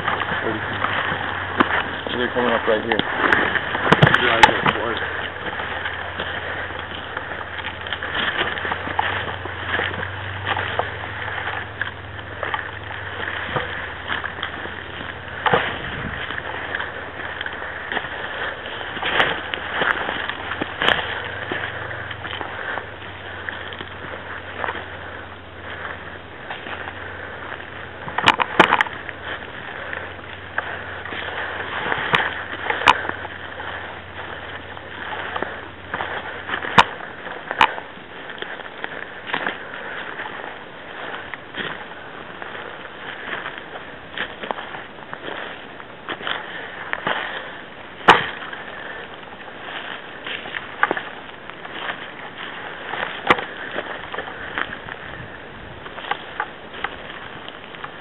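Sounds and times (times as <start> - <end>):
footsteps on forest floor: 0.0 - 58.0
steady low hum: 0.0 - 58.0
twigs snapping: 0.0 - 58.0.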